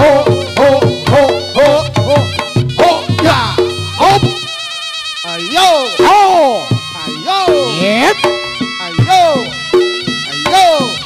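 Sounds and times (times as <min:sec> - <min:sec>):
loud pitch-bending strokes: 0:00.0 - 0:11.0
shawm playing a buzzy note: 0:00.0 - 0:11.0.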